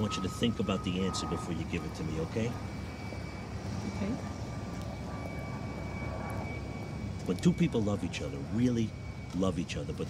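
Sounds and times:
faint high-pitched tone: 0:00.0 - 0:04.2
outdoor background rumble: 0:00.0 - 0:10.0.

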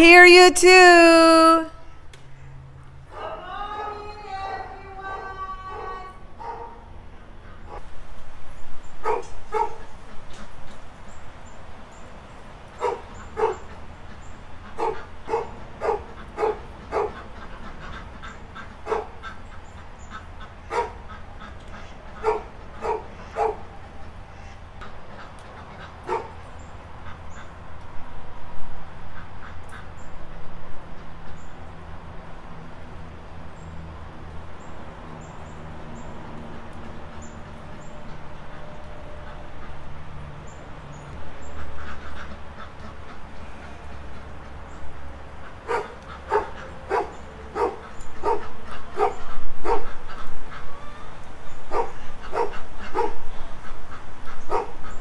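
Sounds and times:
dog barking: 0:05.8 - 0:06.8, 0:09.0 - 0:09.8, 0:12.8 - 0:13.6, 0:14.8 - 0:17.2, 0:18.9 - 0:19.2, 0:20.7 - 0:21.0, 0:22.2 - 0:23.6, 0:26.1 - 0:26.3, 0:45.7 - 0:49.9, 0:51.7 - 0:53.2, 0:54.5 - 0:54.8.

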